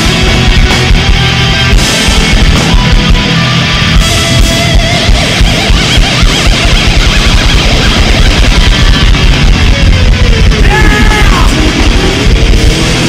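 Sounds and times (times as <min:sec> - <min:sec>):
distorted electric guitars: 0:00.0 - 0:13.0
fast dense drumming: 0:00.0 - 0:13.0
guitar note sliding down: 0:00.0 - 0:13.0
heavy metal band playing live: 0:00.0 - 0:13.0.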